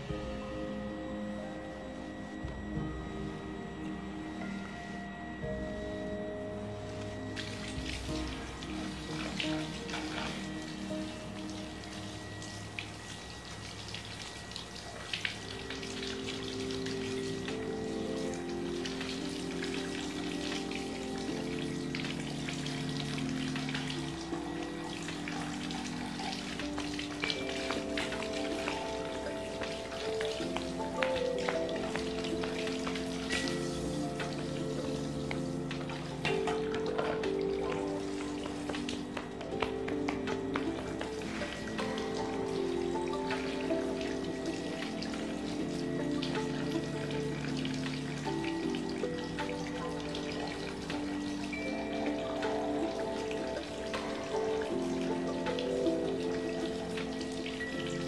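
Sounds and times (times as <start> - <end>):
background music slow chords: 0.0 - 58.0
shower spraying on hair: 6.9 - 58.0.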